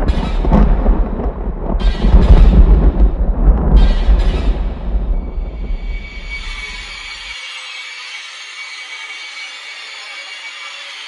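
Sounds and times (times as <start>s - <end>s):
deep bass music: 0.0s - 5.8s.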